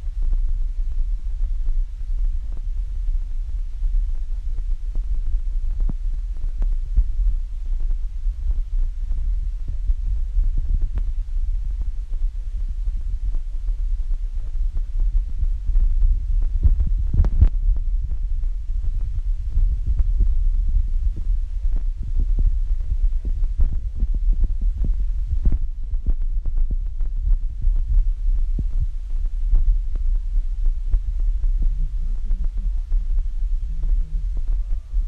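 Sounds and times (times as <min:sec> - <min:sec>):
wind buffeting microphone: 0:00.0 - 0:35.0
microphone knocks and pops: 0:15.2 - 0:30.1.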